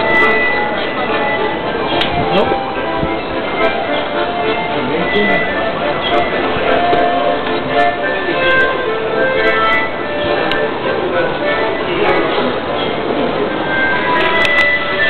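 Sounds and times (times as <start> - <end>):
accordion melody: 0.0 - 15.0
voices of people: 0.0 - 15.0.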